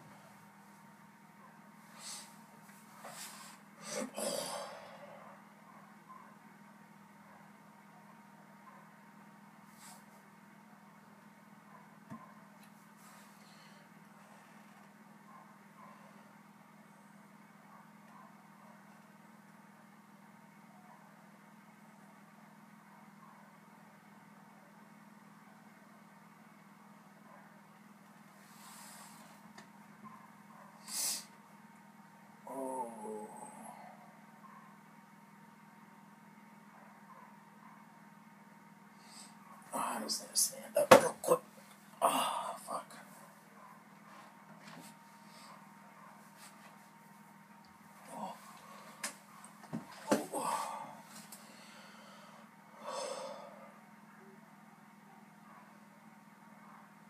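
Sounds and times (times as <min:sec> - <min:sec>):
steady low hum: 0:00.0 - 0:57.0
person breathing close: 0:03.0 - 0:05.4, 0:50.2 - 0:53.8.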